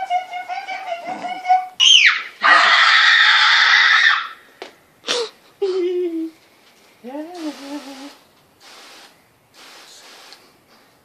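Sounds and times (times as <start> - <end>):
woman screaming harshly: 1.8 - 4.4.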